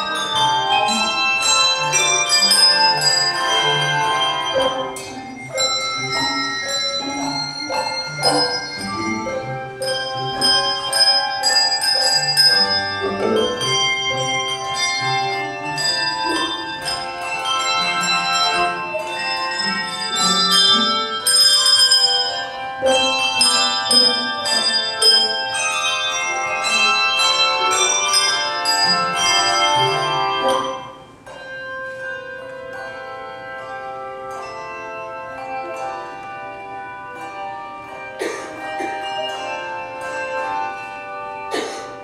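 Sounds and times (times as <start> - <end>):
handbell choir playing: 0.0 - 42.0.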